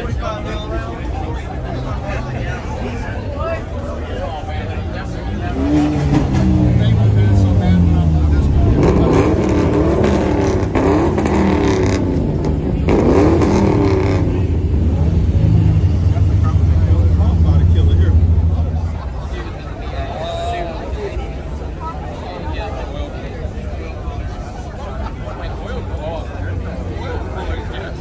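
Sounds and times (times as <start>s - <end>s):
car engine revving: 5.2s - 19.4s.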